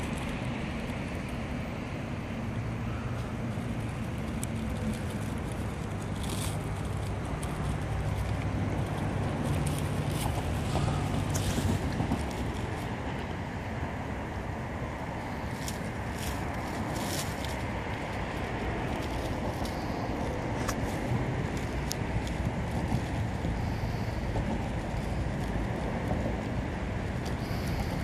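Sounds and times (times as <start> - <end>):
street traffic rumble: 0.0 - 28.0.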